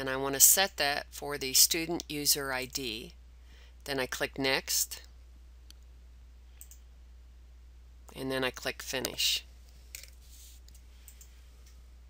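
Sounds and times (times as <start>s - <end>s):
faint background hiss: 0.0s - 12.0s
steady low hum: 0.0s - 12.0s
computer mouse click: 6.6s - 6.8s.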